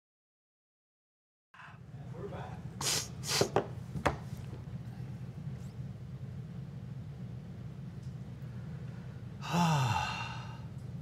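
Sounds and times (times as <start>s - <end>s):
steady low hum: 1.6s - 11.0s
man sighing: 9.4s - 10.7s.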